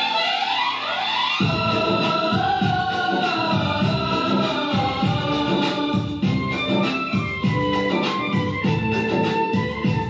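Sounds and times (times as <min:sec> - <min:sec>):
low pulsing beat: 0:01.4 - 0:10.0.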